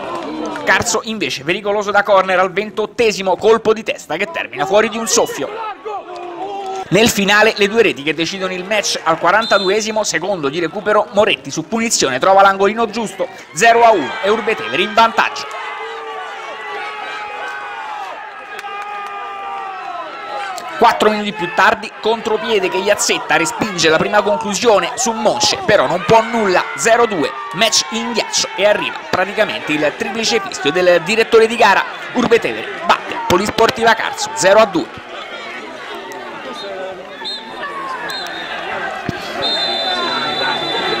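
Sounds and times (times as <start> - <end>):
players shouting and yelling: 0.0 - 41.0.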